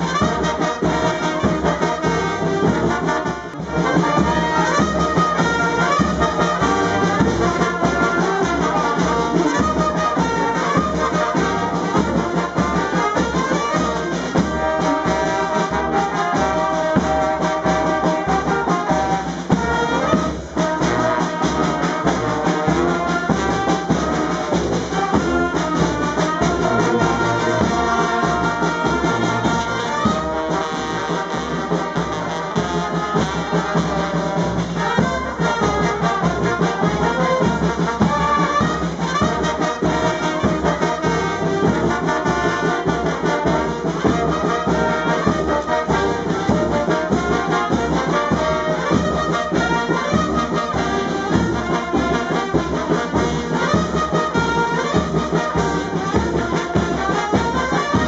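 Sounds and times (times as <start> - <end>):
brass band playing: 0.0 - 58.0
snare drum beat: 0.0 - 58.0.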